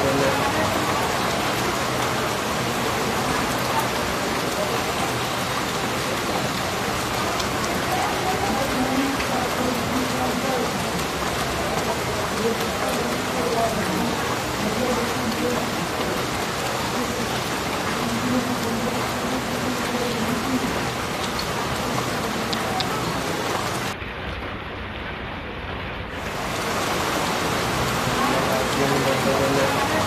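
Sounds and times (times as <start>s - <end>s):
faint voices: 0.0s - 24.0s, 26.3s - 30.0s
heavy rain falling: 0.0s - 30.0s.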